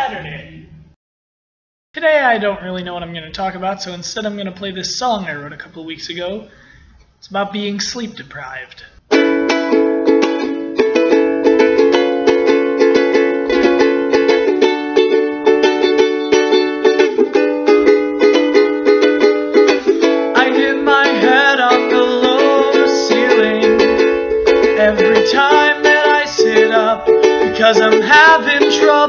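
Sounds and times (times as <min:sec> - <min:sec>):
ukulele strumming chords: 0:09.1 - 0:29.0
person singing: 0:19.9 - 0:29.0.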